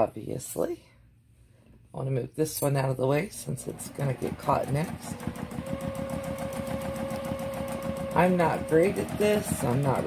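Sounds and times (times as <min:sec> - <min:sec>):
sewing machine stitching: 0:03.4 - 0:10.0
motor whine: 0:04.9 - 0:10.0.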